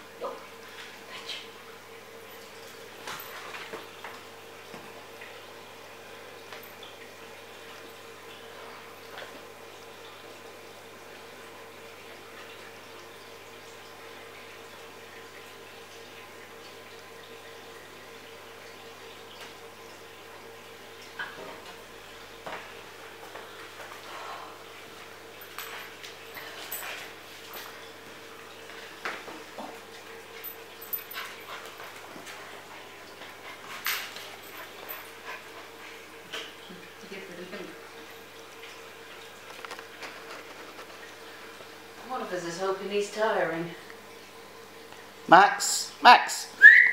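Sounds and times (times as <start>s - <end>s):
faint steady hum: 0.0s - 46.9s.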